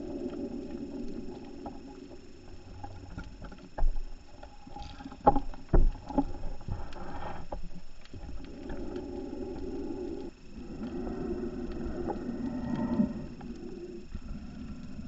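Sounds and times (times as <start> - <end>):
regulator hissing inhale: 0.0 - 2.6, 6.4 - 15.0
exhaled bubbles underwater: 0.0 - 15.0.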